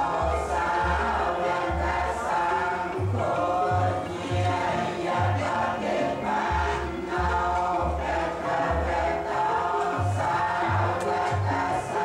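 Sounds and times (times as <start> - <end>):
voices chanting prayers over loudspeaker: 0.0 - 12.0.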